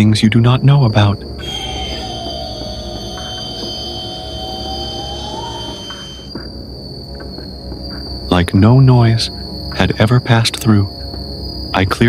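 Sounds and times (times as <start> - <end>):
dark ambient horror music: 0.0 - 12.0.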